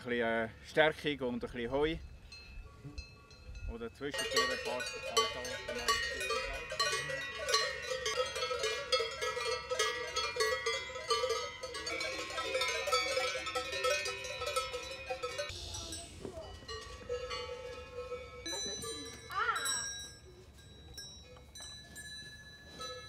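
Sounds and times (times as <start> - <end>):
cowbells clanking: 2.0 - 23.0.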